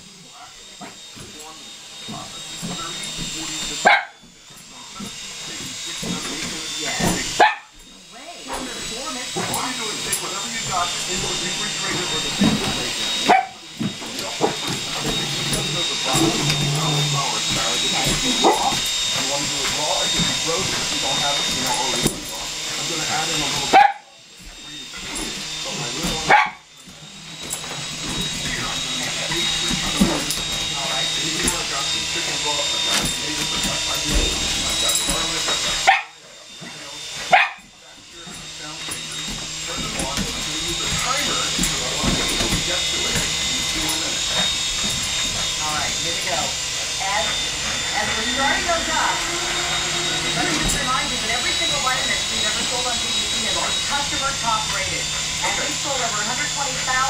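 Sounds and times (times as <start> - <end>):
toy helicopter whine: 0.0 - 57.0
dog barking: 3.8 - 4.2, 7.4 - 7.7, 13.3 - 13.6, 23.7 - 24.1, 26.3 - 26.6, 35.9 - 36.2, 37.3 - 37.6.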